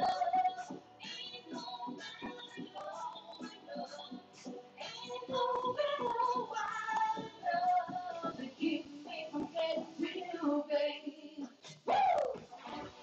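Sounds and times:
backing beat: 0.0 - 10.4
woman singing into microphone: 0.0 - 12.9.

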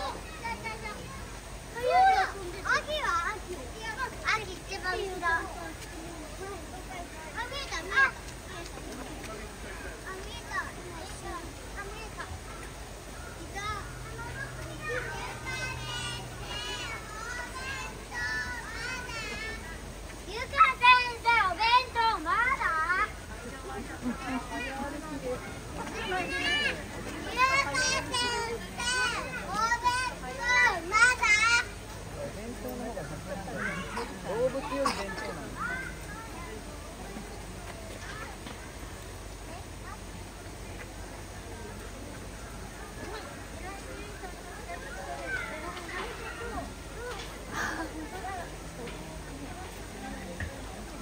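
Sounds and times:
children calling out: 0.0 - 5.6, 10.1 - 23.2, 25.8 - 31.8, 33.5 - 38.4, 42.6 - 48.6.

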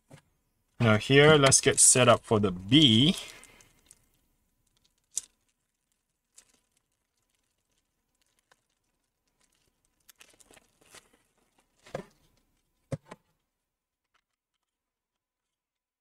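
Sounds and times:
plastic shrink-wrap crinkling: 2.8 - 12.9.

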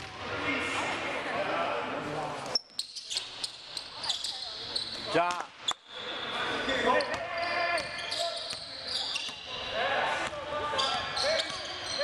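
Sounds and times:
voices in a gym: 0.0 - 12.0.

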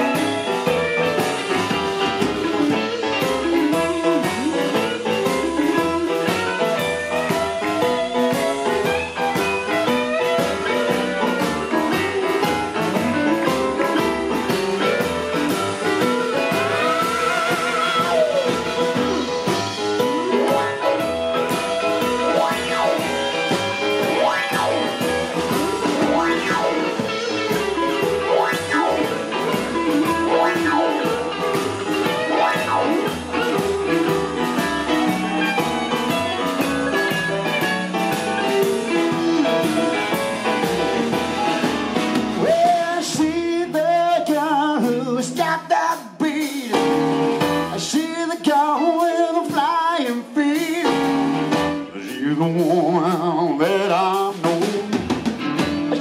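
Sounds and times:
live band with singing: 0.0 - 56.0.

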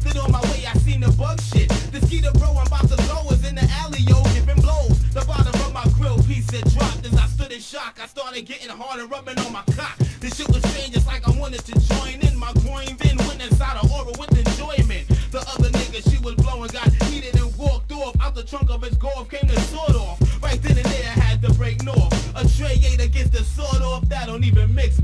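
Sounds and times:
heavy kick drum: 0.0 - 7.4, 9.7 - 24.8
deep bass line: 0.0 - 7.5, 10.5 - 25.0
rapping over a beat: 0.0 - 25.0.

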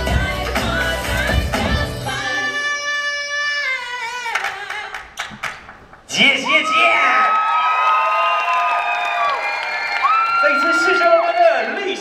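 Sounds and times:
audience cheering and screaming: 6.3 - 12.0.

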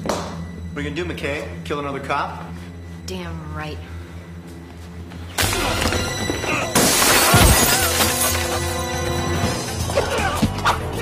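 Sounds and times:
dramatic action film score: 0.0 - 11.0
glass shattering: 6.7 - 8.8.

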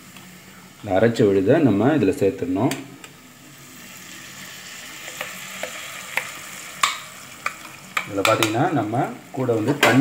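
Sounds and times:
oil sizzling in a pan: 3.1 - 10.0
bowl and utensil clicks: 5.1 - 8.6.

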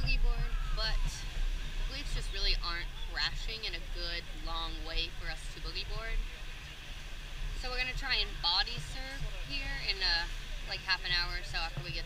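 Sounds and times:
woman's voice: 0.0 - 1.2, 1.9 - 6.2, 7.6 - 12.0
surf washing: 0.0 - 12.0
wind rumbling on microphone: 0.0 - 12.0.

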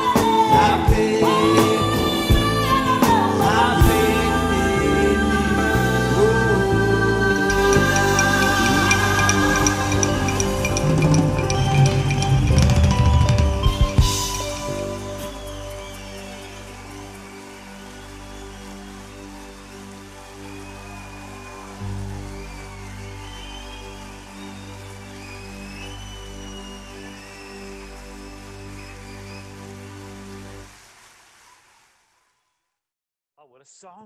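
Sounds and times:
live band playing chords: 0.0 - 20.1
crowd noise: 1.5 - 31.4
high whistles: 7.4 - 30.5.

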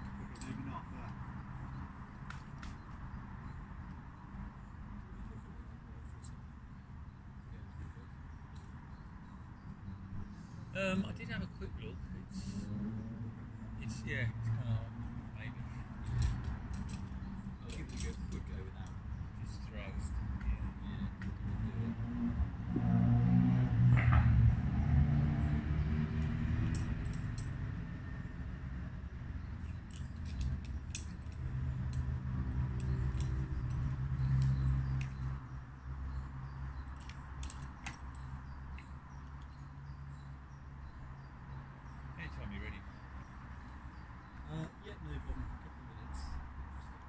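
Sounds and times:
metal climbing gear clinking: 0.0 - 4.3, 15.7 - 20.2, 26.2 - 28.3, 28.9 - 41.3.

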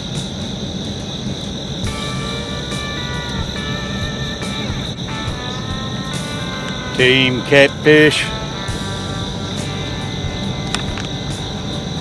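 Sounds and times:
insect chorus high-pitched drone: 0.0 - 12.0.

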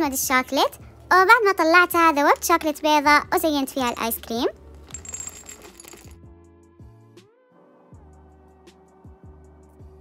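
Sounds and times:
chocolate chips clattering into bowl: 3.8 - 6.2.

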